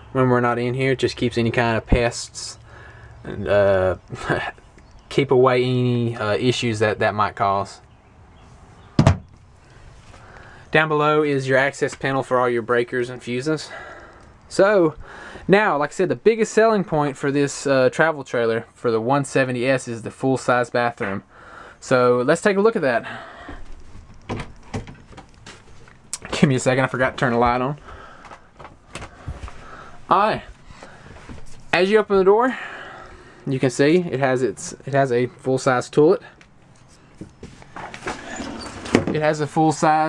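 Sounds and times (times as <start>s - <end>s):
cabinet door shutting: 9.0s - 9.3s.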